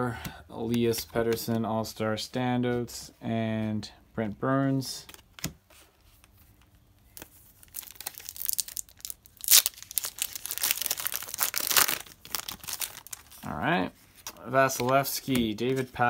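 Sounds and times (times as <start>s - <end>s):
foil pack crinkling and tearing: 7.6s - 13.4s.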